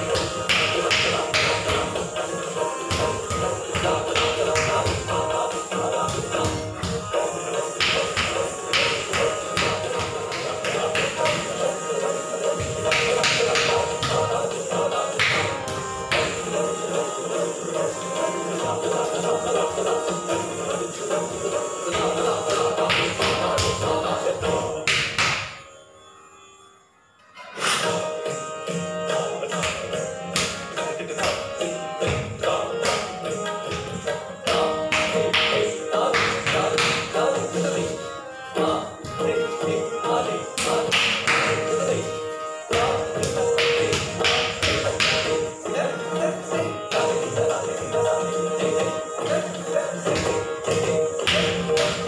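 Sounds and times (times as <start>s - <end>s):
classical instrumental music: 0.0s - 52.0s
bare feet stamping on floor: 2.9s - 5.2s, 50.1s - 52.0s.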